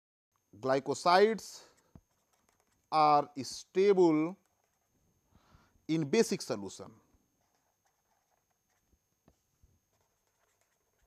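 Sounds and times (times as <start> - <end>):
marker writing on paper: 1.7 - 3.0, 7.4 - 9.0, 9.9 - 11.0.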